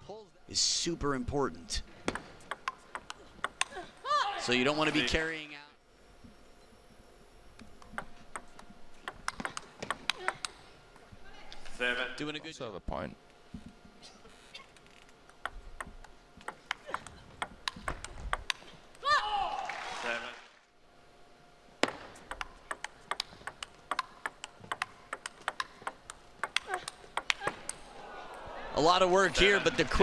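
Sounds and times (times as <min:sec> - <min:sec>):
table tennis ball hits: 0:02.1 - 0:03.8, 0:07.7 - 0:10.6, 0:15.3 - 0:18.8, 0:21.8 - 0:27.8
loud shout: 0:19.0 - 0:20.3.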